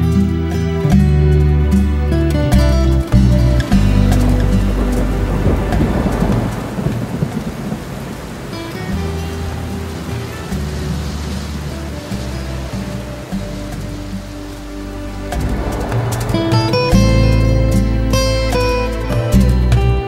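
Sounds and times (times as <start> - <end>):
heavy rain falling: 0.0 - 20.0
soft background music: 0.0 - 20.0
thunder rumbling: 0.0 - 20.0.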